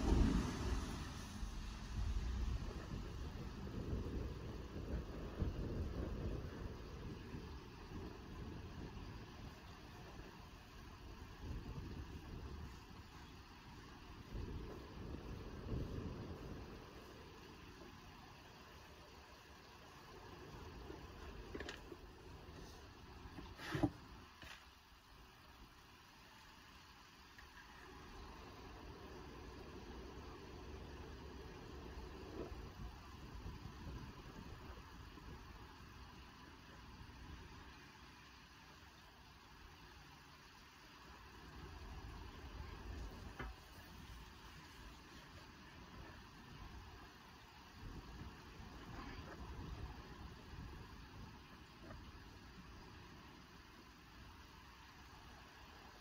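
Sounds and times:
gas torch flame: 0.0s - 7.3s.

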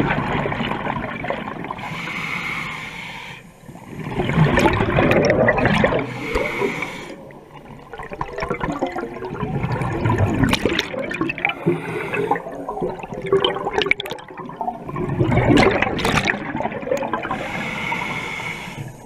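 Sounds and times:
scuba regulator bubbling underwater: 3.7s - 18.3s.

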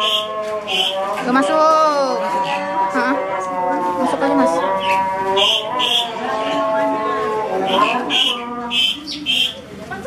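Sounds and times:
voices singing long sliding notes: 0.0s - 9.6s.

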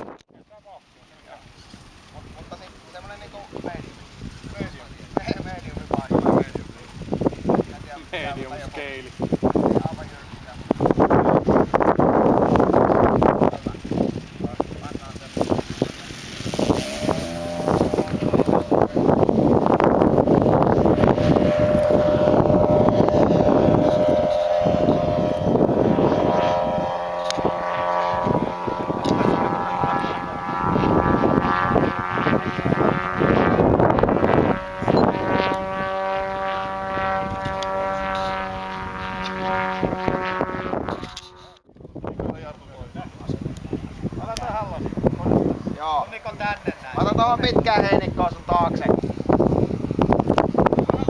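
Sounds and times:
wind buffeting microphone: 0.0s - 51.0s
model plane engine droning: 0.6s - 41.7s.

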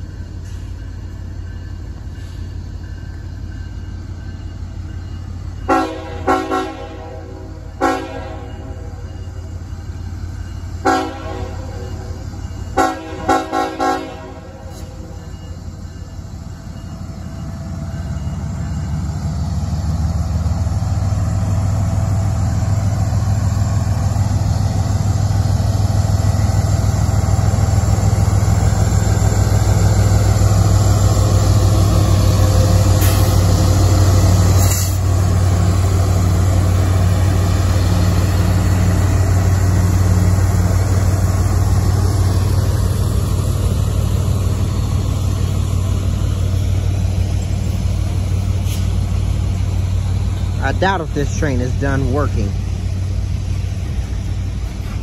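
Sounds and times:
locomotive engine drone: 0.0s - 55.0s
tank cars rolling by: 25.2s - 55.0s.

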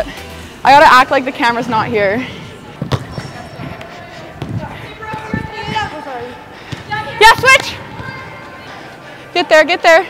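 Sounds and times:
players' voices: 0.0s - 10.0s
soccer balls kicked and bouncing: 2.5s - 8.7s.

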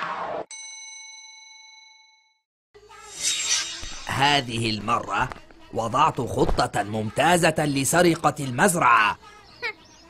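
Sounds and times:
loud rushing noise: 3.1s - 4.6s.

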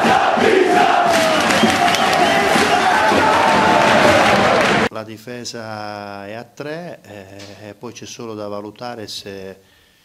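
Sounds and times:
stadium crowd chanting and singing: 0.0s - 4.9s.

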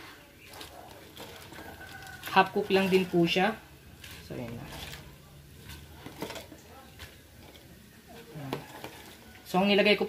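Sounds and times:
vegetables stirred in metal pot: 0.0s - 10.0s.

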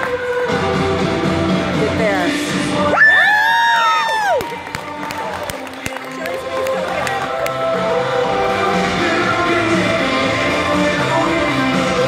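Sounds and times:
pop-rock song over speakers: 0.0s - 12.0s.

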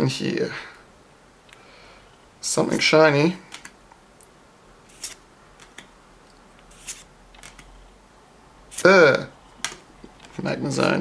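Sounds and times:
trading cards sliding: 3.5s - 3.8s, 4.9s - 5.9s, 6.6s - 7.8s, 8.7s - 9.0s.

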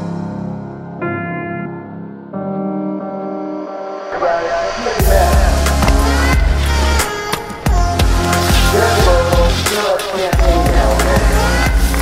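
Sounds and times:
beat with heavy bass: 5.0s - 7.0s, 7.7s - 9.7s, 10.3s - 12.0s.

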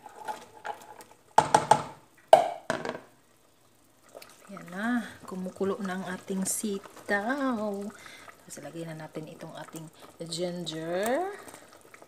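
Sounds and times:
plastic container knocking on metal pot: 1.4s - 3.1s.

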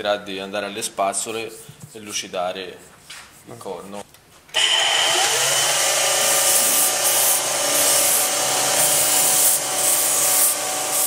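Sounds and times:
belt sander grinding: 4.6s - 11.0s.

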